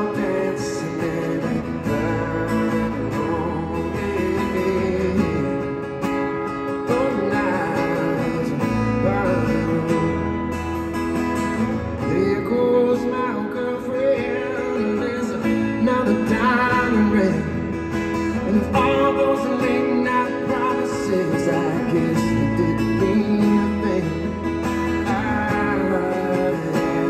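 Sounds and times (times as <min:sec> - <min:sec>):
acoustic guitar playing: 0:00.0 - 0:27.0.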